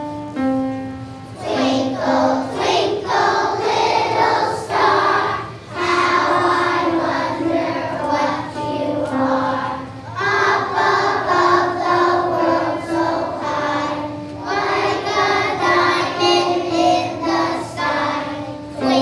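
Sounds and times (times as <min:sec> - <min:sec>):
children singing in unison: 0:01.4 - 0:19.0.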